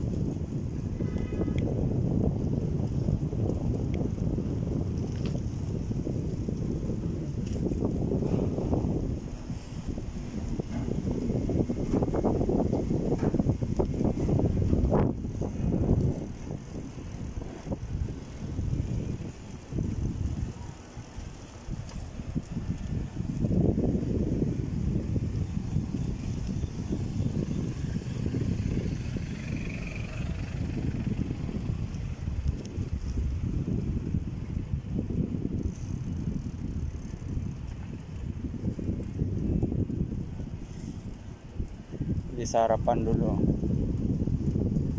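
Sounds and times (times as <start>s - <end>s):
wind buffeting a microphone: 0.0s - 44.9s.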